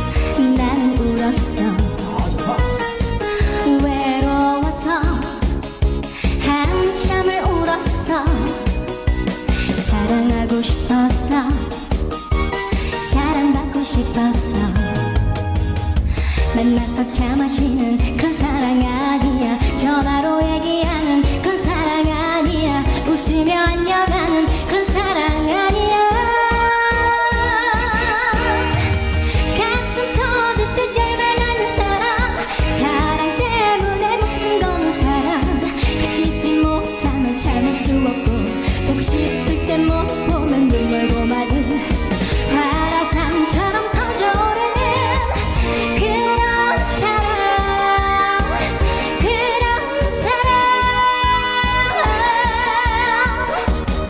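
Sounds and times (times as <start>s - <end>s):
woman singing: 0.0s - 2.6s, 3.2s - 8.8s, 9.7s - 12.2s, 12.8s - 15.4s, 16.3s - 54.0s
backing track with drum beat: 0.0s - 54.0s.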